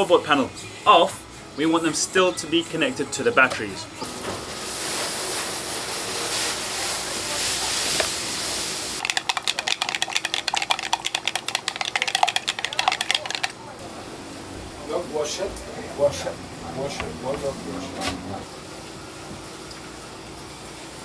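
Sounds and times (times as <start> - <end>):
liquid pouring into plastic cup: 9.0 - 13.6
stick stirring in plastic cup: 9.0 - 13.6.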